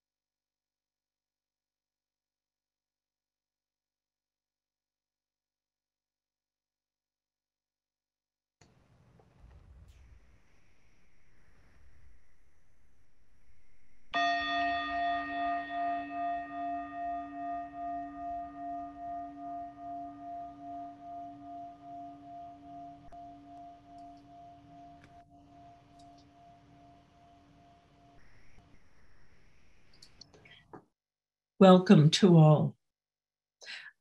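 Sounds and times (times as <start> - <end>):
singing bowl ringing: 13.2 - 28.2.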